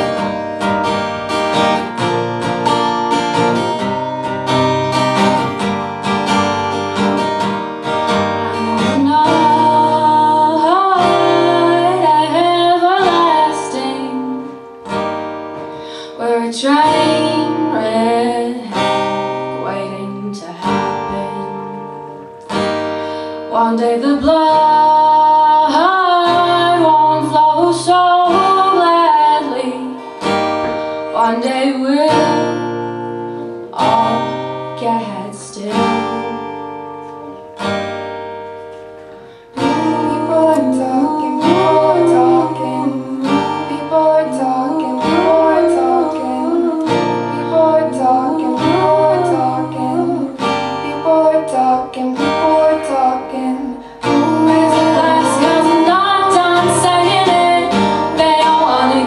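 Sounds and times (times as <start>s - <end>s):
acoustic guitar strumming chords: 0.0s - 59.0s
woman singing: 6.3s - 37.5s, 39.5s - 59.0s.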